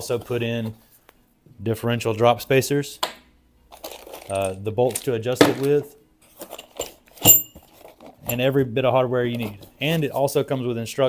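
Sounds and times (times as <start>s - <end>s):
metal hardware clinking in a box: 3.7s - 5.8s, 6.4s - 8.4s
sharp ringing metallic clink: 7.2s - 7.6s.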